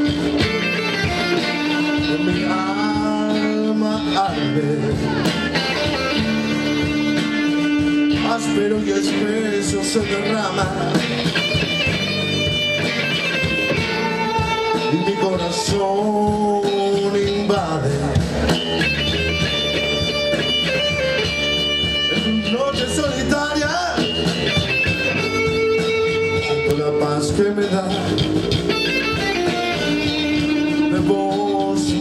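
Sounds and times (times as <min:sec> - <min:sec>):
bass guitar: 0:00.0 - 0:32.0
drum kit: 0:00.0 - 0:32.0
electric guitars: 0:00.0 - 0:32.0.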